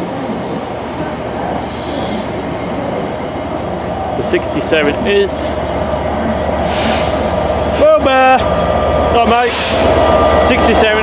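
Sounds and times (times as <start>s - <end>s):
diesel locomotive drone: 0.0s - 11.0s
train coaches rolling past: 0.0s - 11.0s
brief hiss: 6.6s - 7.2s.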